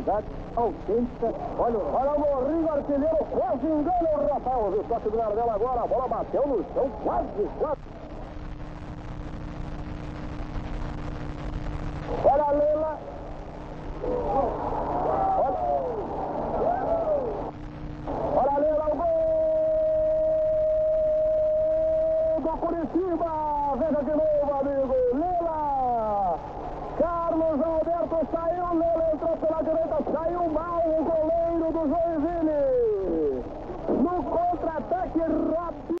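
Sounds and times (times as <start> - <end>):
excited commentary: 0.0 - 7.9, 12.1 - 13.1, 14.0 - 17.5, 18.2 - 36.0
stadium crowd noise: 14.0 - 17.5
commentator calling out: 27.0 - 36.0.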